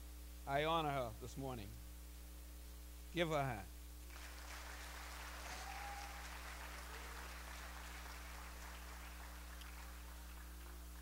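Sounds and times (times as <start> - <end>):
congregation applauding: 4.1 - 11.0.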